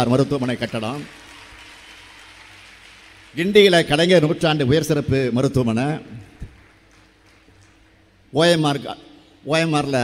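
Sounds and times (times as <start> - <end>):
crowded hall background hiss: 0.0 - 10.0.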